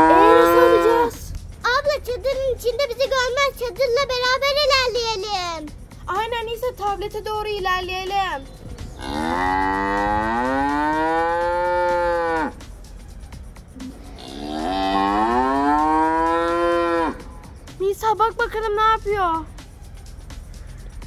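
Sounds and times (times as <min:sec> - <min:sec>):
cow mooing: 0:00.0 - 0:01.1, 0:09.0 - 0:12.6, 0:14.0 - 0:17.3.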